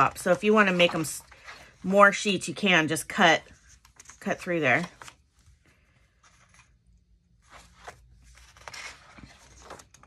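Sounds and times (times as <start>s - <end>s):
paper pages turning: 3.4s - 10.0s.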